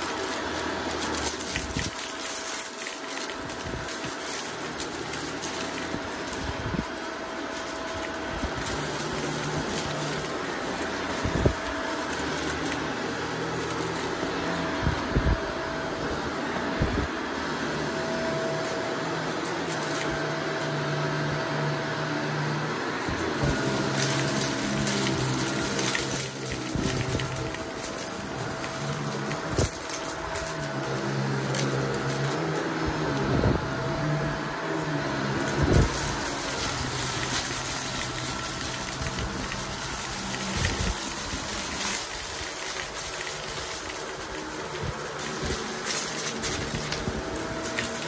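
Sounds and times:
debris clicking in vacuum: 0:00.0 - 0:17.0, 0:18.0 - 0:48.0
upright vacuum running on rug: 0:00.0 - 0:48.0.

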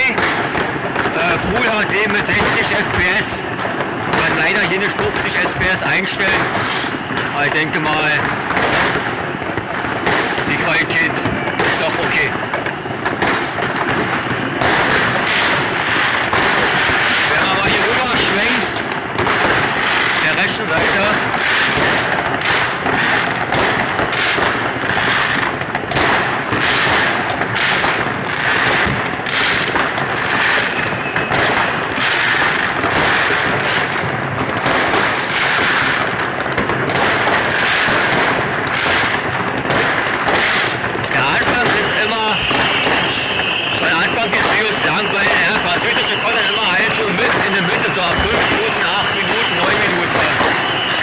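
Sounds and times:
fireworks banging and crackling: 0:00.0 - 0:51.0.

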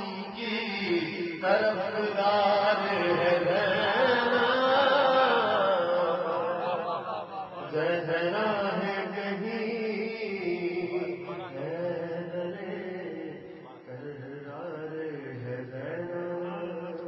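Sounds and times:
man chanting: 0:00.0 - 0:17.0.

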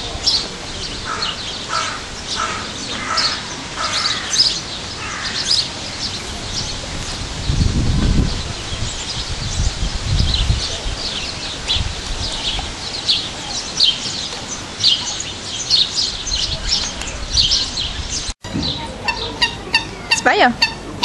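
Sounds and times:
birds calling: 0:00.0 - 0:21.0.

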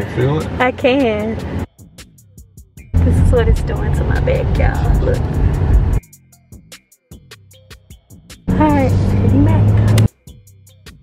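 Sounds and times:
car engine and road hum: 0:00.0 - 0:01.7, 0:02.9 - 0:06.0, 0:08.5 - 0:10.1
wind noise: 0:03.0 - 0:06.0.

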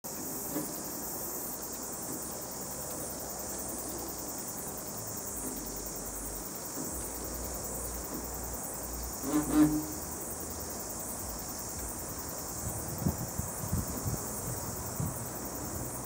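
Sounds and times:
insects chirring: 0:00.0 - 0:16.0.

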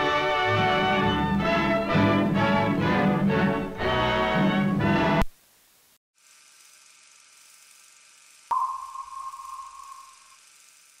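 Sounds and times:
faint steady hiss: 0:05.2 - 0:06.0
sonar ping: 0:08.5 - 0:10.4.

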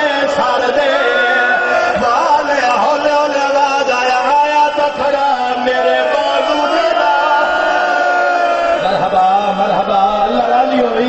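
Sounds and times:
voices chanting a mournful lament: 0:00.0 - 0:11.0.

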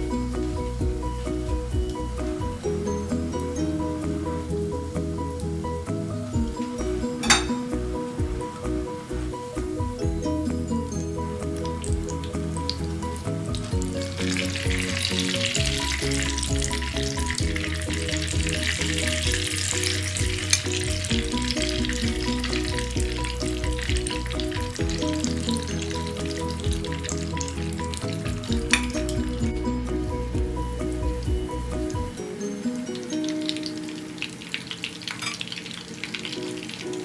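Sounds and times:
background music: 0:00.0 - 0:37.0
oil sizzling in a pan: 0:00.0 - 0:37.0.

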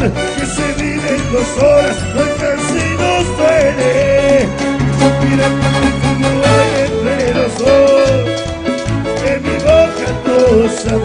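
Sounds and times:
sliding melody line: 0:00.0 - 0:11.0.

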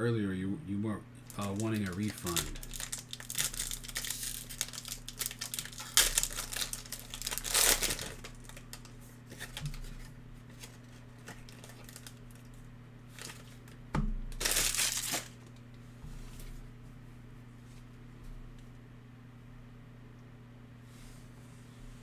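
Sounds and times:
foil wrapper crinkling: 0:01.2 - 0:15.5
cards rustling: 0:01.3 - 0:12.5, 0:13.1 - 0:13.8, 0:14.4 - 0:15.4.

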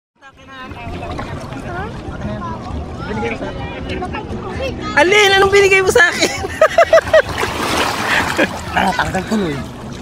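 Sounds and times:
people talking and calling out: 0:00.2 - 0:10.0.

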